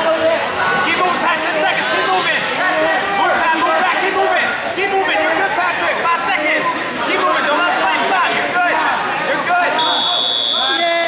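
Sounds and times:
people shouting: 0:00.0 - 0:11.0.

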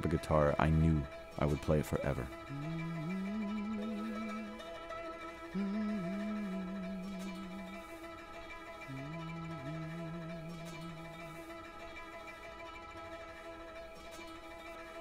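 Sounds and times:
ringing string-like drone: 0:00.0 - 0:15.0
long low sliding notes: 0:00.5 - 0:08.1, 0:08.9 - 0:11.5.

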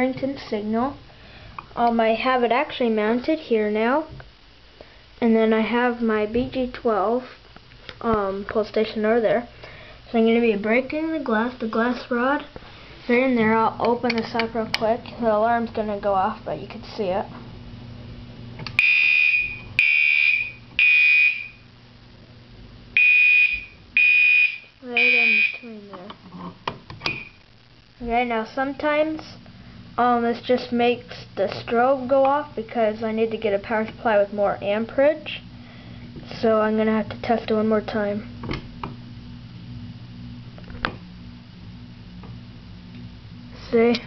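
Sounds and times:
low electrical hum: 0:00.0 - 0:44.0
fire alarm buzzy blasts: 0:18.7 - 0:21.8, 0:22.9 - 0:25.7, 0:27.0 - 0:27.8.

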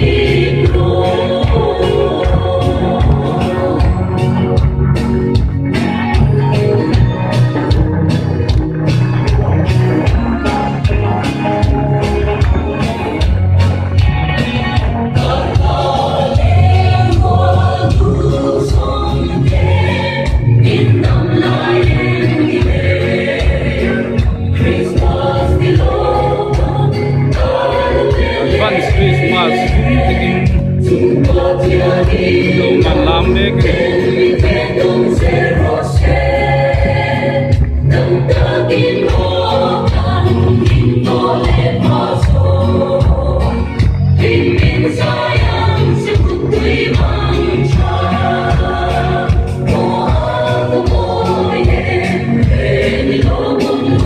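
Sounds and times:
choir singing gospel music: 0:00.0 - 0:54.0
instrumental accompaniment: 0:00.0 - 0:54.0
steady percussion beat: 0:00.0 - 0:54.0.

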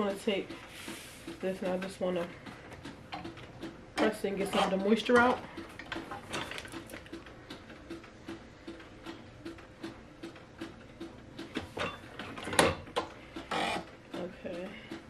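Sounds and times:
heat press ticking: 0:00.0 - 0:15.0.

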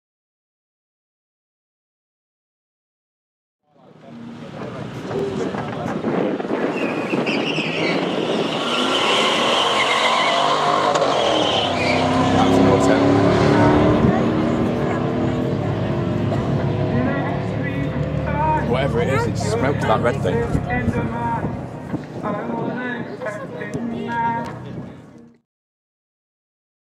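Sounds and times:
car engines accelerating hard: 0:03.8 - 0:23.0.

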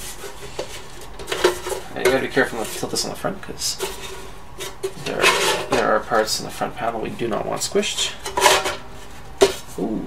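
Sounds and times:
sheet-metal cover scraping: 0:00.0 - 0:03.1, 0:03.7 - 0:06.5, 0:07.9 - 0:09.8.

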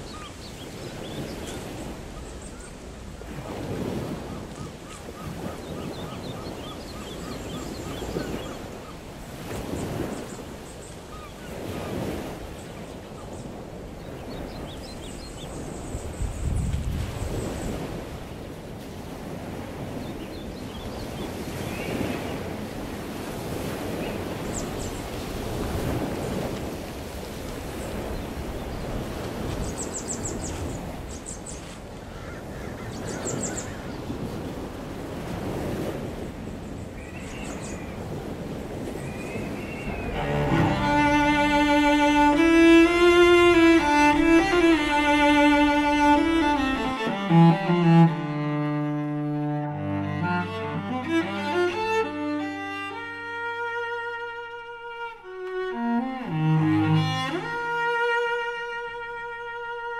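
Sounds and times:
wind gusting over microphone: 0:00.0 - 0:31.1, 0:33.0 - 0:52.8.

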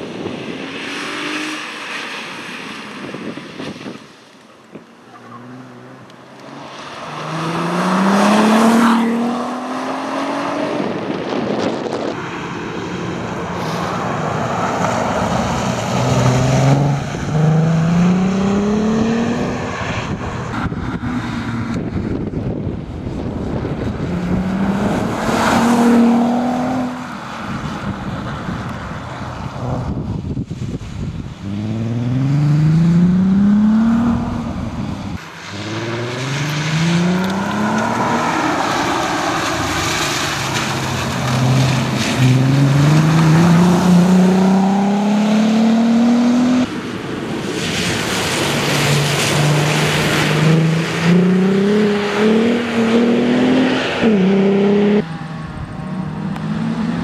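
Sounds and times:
car engine revving: 0:05.0 - 0:22.3, 0:23.2 - 0:27.7, 0:31.4 - 0:46.8, 0:47.9 - 0:57.0.

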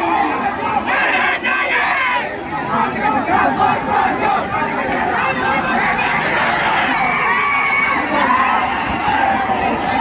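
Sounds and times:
crowd shouting and cheering: 0:00.0 - 0:10.0.

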